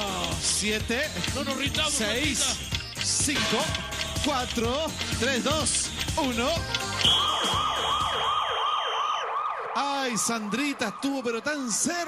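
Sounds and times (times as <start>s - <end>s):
referee's whistle blast: 7.0s - 8.6s
siren-like wailing tone: 7.0s - 12.0s.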